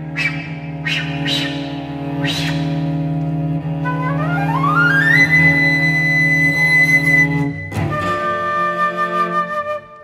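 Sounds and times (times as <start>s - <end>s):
breathy flute notes: 0.0s - 10.0s.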